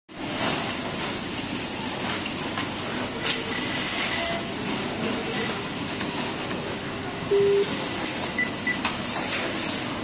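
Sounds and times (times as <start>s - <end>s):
workshop din: 0.2s - 10.0s.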